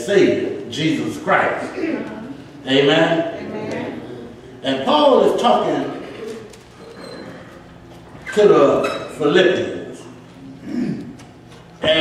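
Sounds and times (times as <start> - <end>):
person humming in agreement: 10.5 - 11.2.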